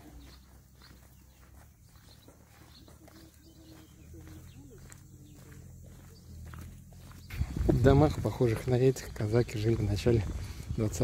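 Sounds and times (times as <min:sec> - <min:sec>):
distant calls: 0:00.0 - 0:10.6
faint footsteps on path: 0:00.0 - 0:11.0.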